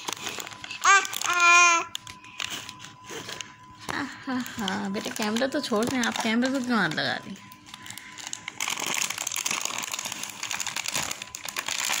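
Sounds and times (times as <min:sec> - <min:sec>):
plastic snack packets crinkling: 0:00.0 - 0:12.0.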